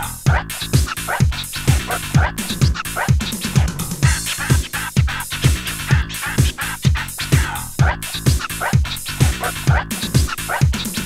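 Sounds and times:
house music track: 0.0s - 11.0s
kick drum: 0.2s - 11.0s.

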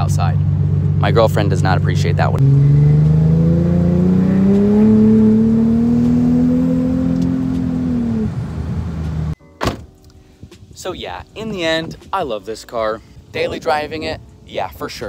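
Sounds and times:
car engine accelerating: 0.0s - 9.4s.

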